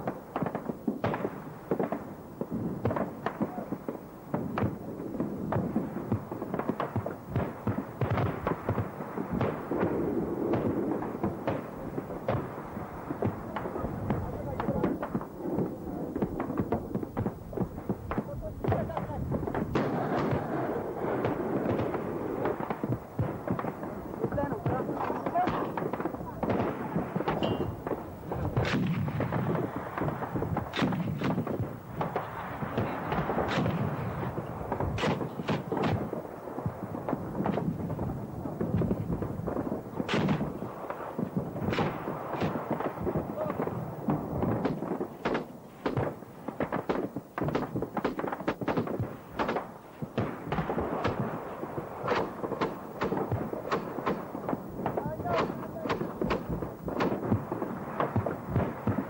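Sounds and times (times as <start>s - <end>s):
artillery booms: 0.0s - 59.0s
rifle and machine-gun fire: 0.0s - 59.0s
sharp gunshot cracks: 17.9s - 23.8s, 24.4s - 32.2s, 32.8s - 36.1s, 40.0s - 43.6s, 44.4s - 51.4s, 52.0s - 59.0s.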